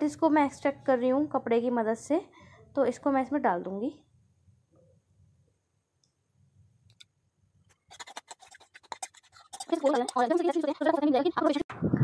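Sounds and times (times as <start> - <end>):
light scratches and clicks: 7.7 - 11.0
person speaking: 9.5 - 12.0.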